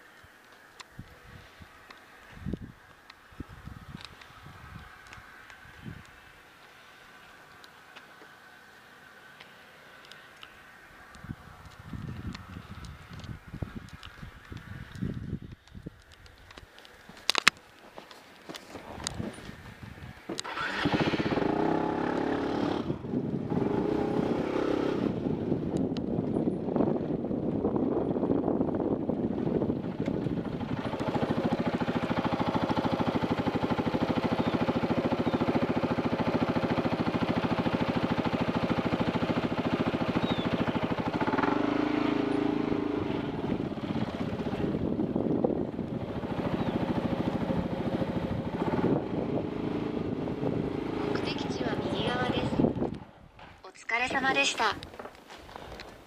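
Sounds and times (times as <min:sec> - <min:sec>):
motorcycle engine starting and running: 0:18.4 - 0:56.0.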